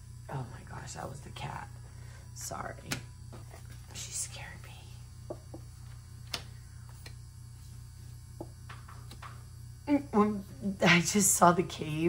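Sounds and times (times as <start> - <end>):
low electrical hum: 0.0 - 12.0
soft whispery hiss: 3.8 - 5.4
cards laid on table: 8.4 - 9.4.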